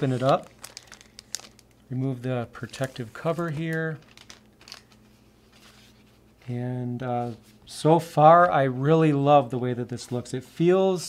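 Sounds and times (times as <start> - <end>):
plastic sheet rustling: 0.0 - 9.0.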